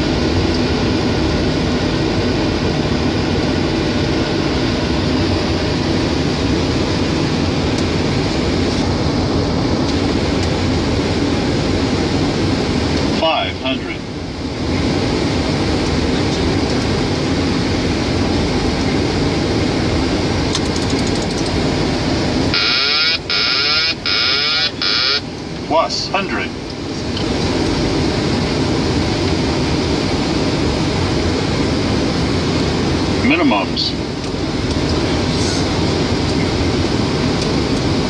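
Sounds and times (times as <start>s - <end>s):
aircraft engine: 0.0s - 38.0s
rushing air in cockpit: 1.0s - 13.2s, 26.8s - 38.0s
warbling electronic alert tone: 22.5s - 25.2s.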